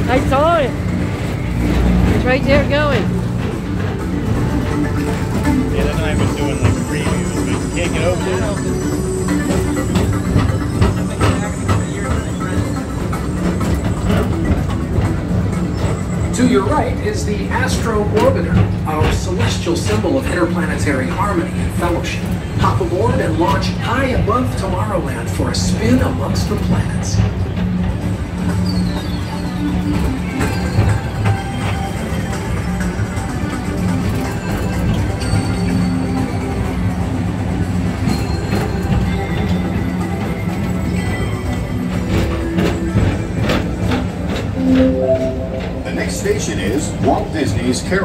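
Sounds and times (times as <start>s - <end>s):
ride car rumbling on track: 0.0s - 48.0s.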